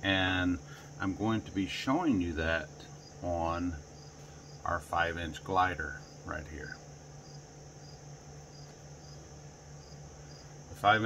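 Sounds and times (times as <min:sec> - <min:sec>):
cricket chirping: 0:00.0 - 0:11.0
fan humming: 0:00.0 - 0:11.0.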